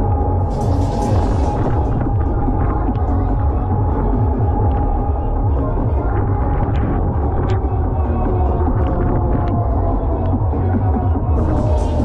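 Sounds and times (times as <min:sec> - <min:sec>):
fairground dance music with heavy bass: 0:00.0 - 0:12.0.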